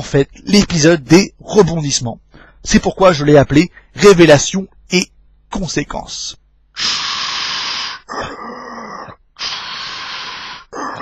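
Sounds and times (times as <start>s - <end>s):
respirator hissing breaths: 6.7s - 11.0s.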